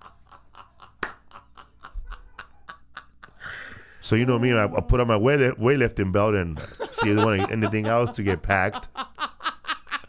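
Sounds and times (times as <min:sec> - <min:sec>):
man breathy laughter: 0:00.0 - 0:03.9.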